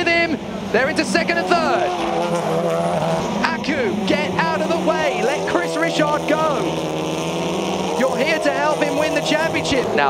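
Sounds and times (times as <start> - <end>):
commentator speaking: 0.0 - 2.2, 3.2 - 6.8, 7.8 - 10.0
race car engines at high revs: 0.0 - 10.0.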